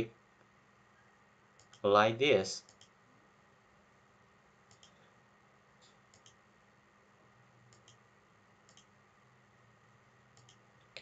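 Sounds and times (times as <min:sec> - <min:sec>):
computer mouse clicks: 0:01.6 - 0:01.8, 0:02.6 - 0:03.0, 0:04.7 - 0:05.0, 0:05.8 - 0:06.4, 0:07.7 - 0:08.0, 0:08.7 - 0:08.9, 0:10.4 - 0:11.0.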